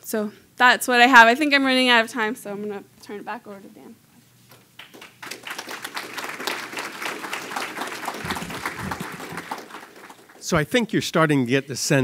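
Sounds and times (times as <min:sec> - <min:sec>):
audience applauding: 0:04.8 - 0:10.6.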